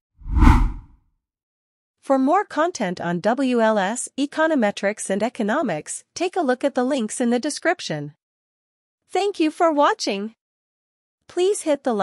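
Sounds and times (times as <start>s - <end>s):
whoosh sound effect: 0.2s - 0.8s.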